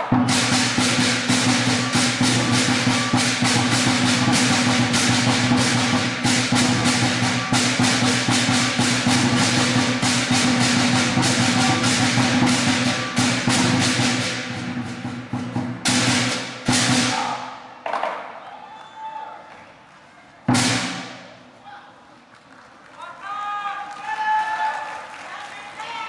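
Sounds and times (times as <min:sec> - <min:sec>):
crashing cymbals: 0:00.0 - 0:17.4
large drum beaten fast: 0:00.0 - 0:17.4, 0:20.5 - 0:21.4.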